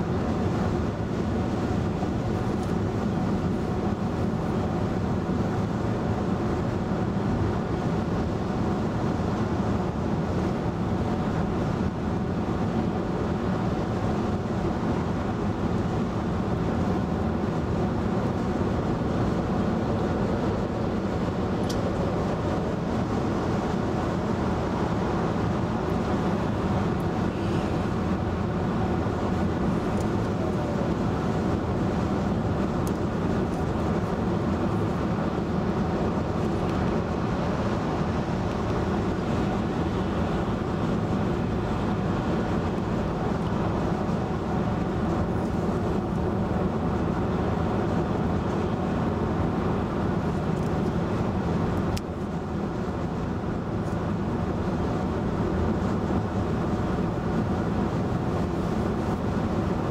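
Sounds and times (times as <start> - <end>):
road and tyre noise in car: 0.0 - 59.9.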